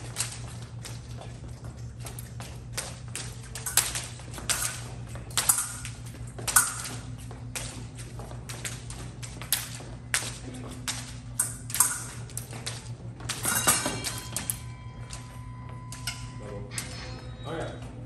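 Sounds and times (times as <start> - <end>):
feet tapping and stamping: 0.0 - 18.0
steady low hum: 0.0 - 18.0.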